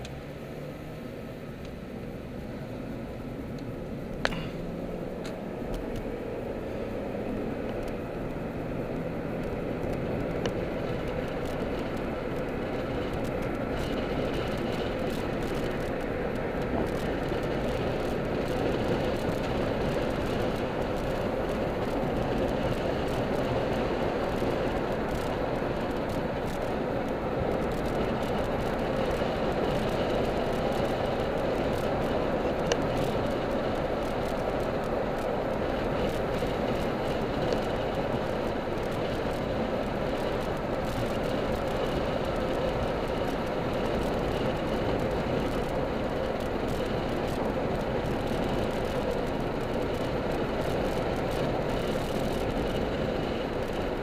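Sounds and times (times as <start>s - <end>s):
car engine and tyre rumble: 0.0s - 54.0s
road roar: 0.0s - 54.0s.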